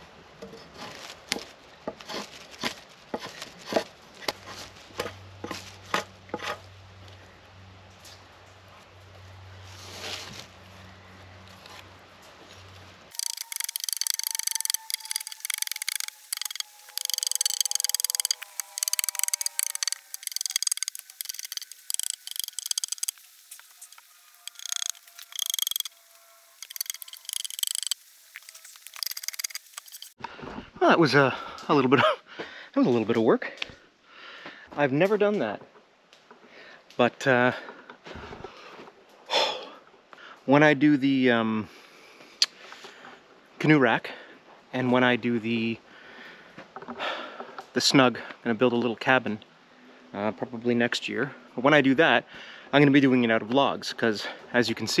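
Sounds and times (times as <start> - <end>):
drawknife scraping log: 0.6 - 6.6, 13.1 - 30.2.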